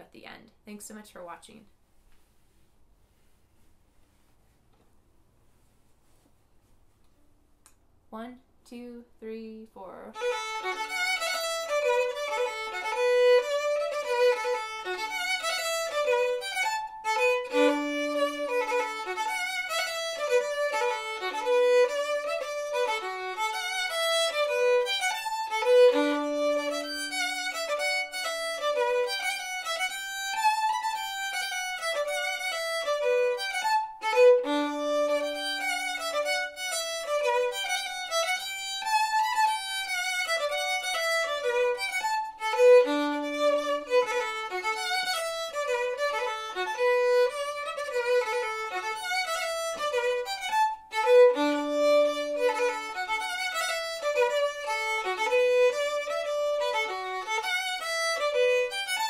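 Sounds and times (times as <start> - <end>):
solo fiddle playing: 10.1 - 59.0.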